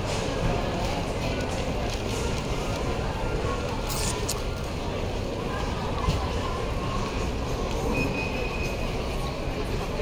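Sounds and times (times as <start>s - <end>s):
low rumble of building and crowd: 0.0s - 10.0s.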